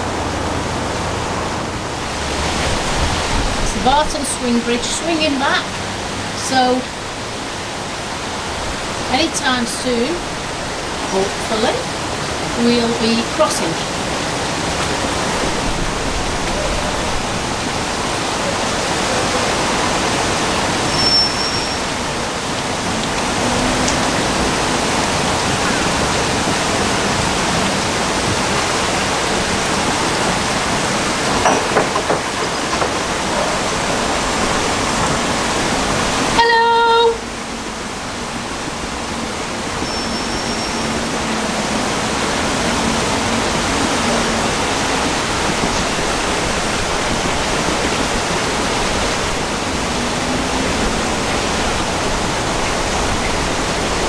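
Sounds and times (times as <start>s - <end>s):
turbulent water rushing: 0.0s - 54.0s
short pitched tone: 20.9s - 21.9s, 39.8s - 40.9s.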